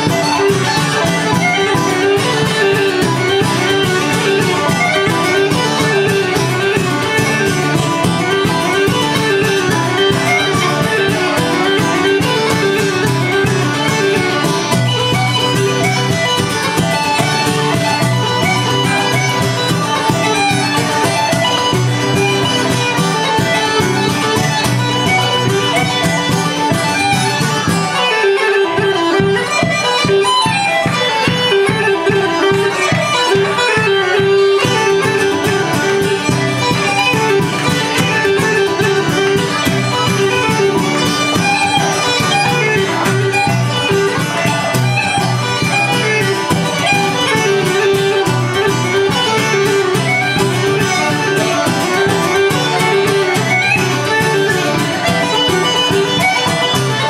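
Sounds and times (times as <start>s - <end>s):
strummed acoustic guitar: 0.0s - 57.0s.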